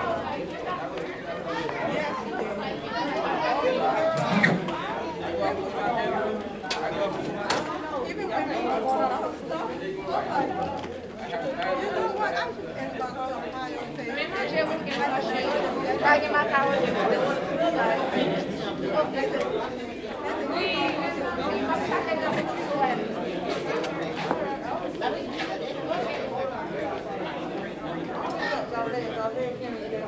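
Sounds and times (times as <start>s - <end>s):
crowd chatter: 0.0s - 30.0s.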